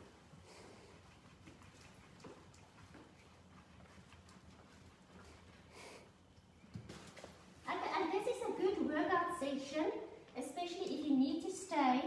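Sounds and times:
woman speaking: 7.7 - 12.0.

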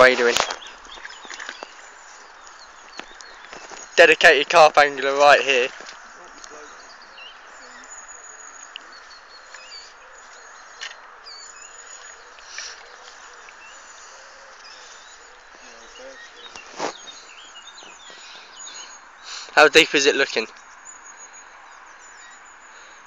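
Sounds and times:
birds chirping: 0.0 - 23.0.

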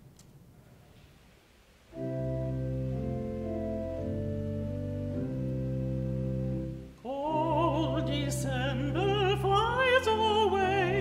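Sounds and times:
organ playing held chords: 1.9 - 11.0.

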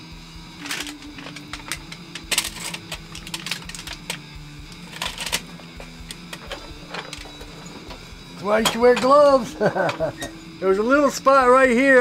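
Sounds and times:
metal oven door clinking: 6.2 - 10.4.

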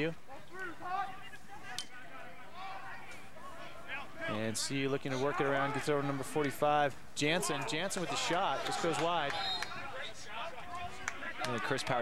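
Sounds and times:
distant players shouting: 0.2 - 12.0.

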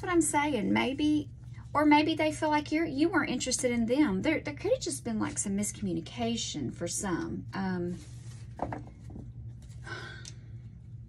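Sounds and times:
low steady hum: 0.0 - 11.0
cards tapping and sliding on table: 8.5 - 9.3.

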